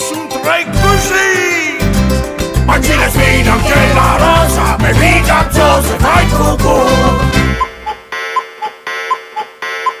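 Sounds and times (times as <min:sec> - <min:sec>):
electronic alarm-like beeping: 0:07.4 - 0:10.0.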